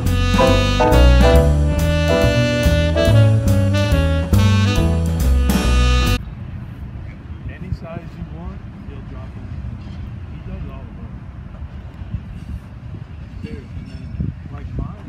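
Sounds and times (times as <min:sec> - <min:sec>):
freight train cars rumbling past: 0:00.0 - 0:05.9
jazz music with saxophone: 0:00.0 - 0:06.2.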